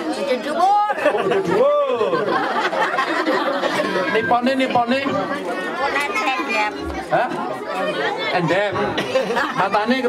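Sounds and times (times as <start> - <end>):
women chattering: 0.0 - 1.6, 2.5 - 10.0.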